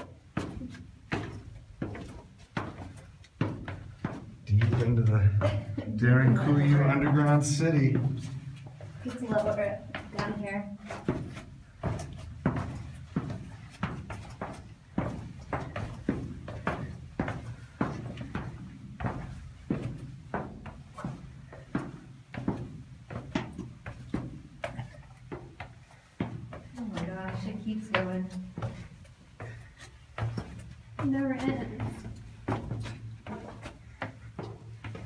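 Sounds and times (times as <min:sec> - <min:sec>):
footsteps on stone floor: 0:00.0 - 0:35.0.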